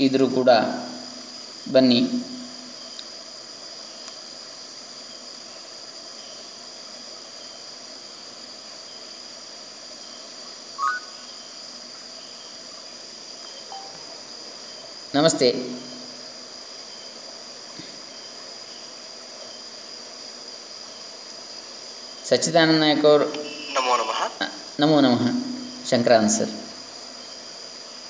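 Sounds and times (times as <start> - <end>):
continuous high-pitched tone: 0.0 - 3.1, 10.0 - 11.6, 13.4 - 16.4, 22.2 - 27.6
steady background hiss: 0.0 - 28.0
short voice sound: 23.4 - 24.5.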